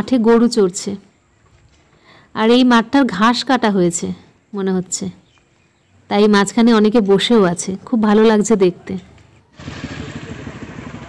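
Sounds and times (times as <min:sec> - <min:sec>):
vehicle engine rumbling: 0:09.6 - 0:11.0.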